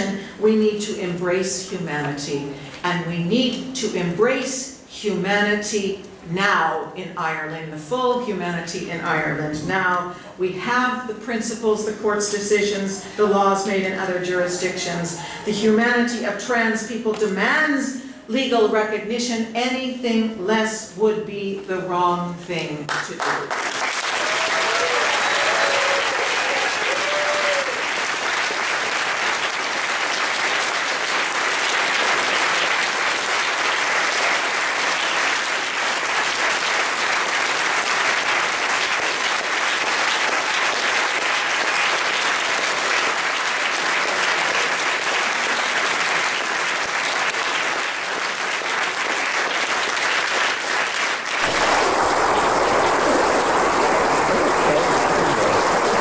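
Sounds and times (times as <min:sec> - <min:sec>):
audience applauding: 0:23.2 - 0:56.0
deep wash of noise: 0:51.4 - 0:56.0.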